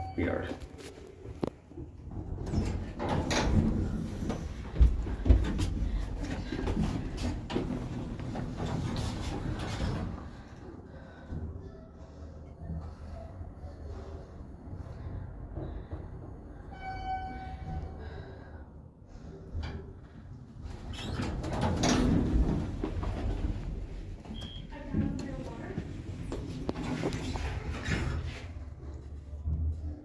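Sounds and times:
elevator arrival chime: 0.0s - 0.6s
sliding elevator doors opening: 2.0s - 10.5s, 20.6s - 24.7s.

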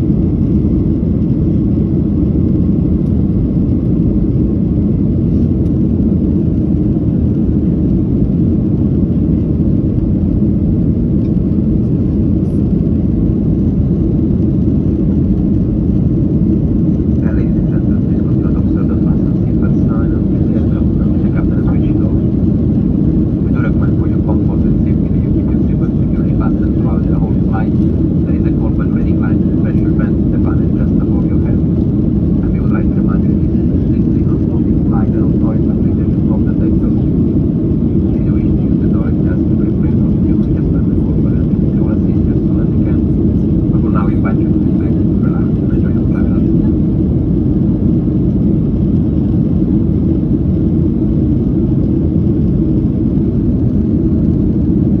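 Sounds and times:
jet cabin engine noise: 0.0s - 55.0s
faint passenger voices: 17.1s - 22.4s, 23.3s - 47.4s.

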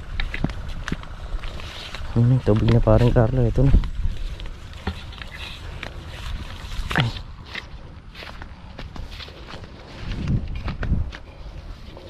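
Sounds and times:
footsteps on dry soil: 0.0s - 12.0s
leaves brushing: 0.0s - 12.0s
wind rumble on microphone: 0.0s - 12.0s.

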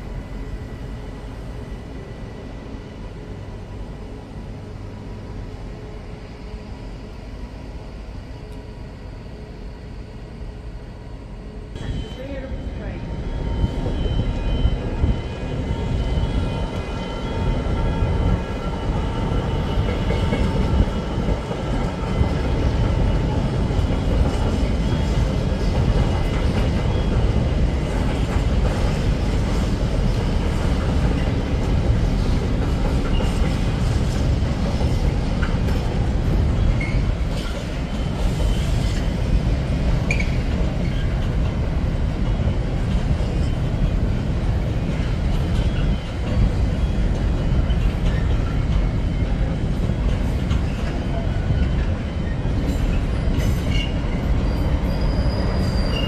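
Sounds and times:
freight train rumbling on tracks: 0.0s - 56.0s.

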